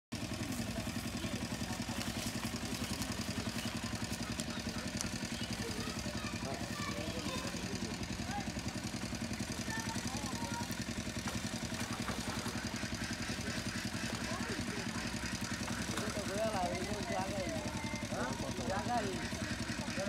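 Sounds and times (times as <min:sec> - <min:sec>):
small engine chugging: 0:00.1 - 0:20.0
faint voices: 0:00.2 - 0:20.0.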